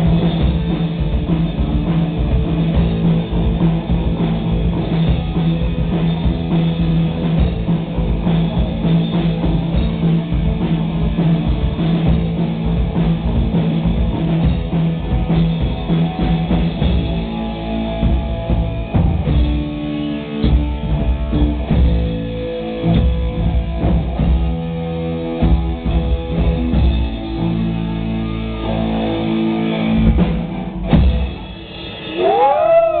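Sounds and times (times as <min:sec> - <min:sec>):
rock band playing: 0:00.0 - 0:33.0.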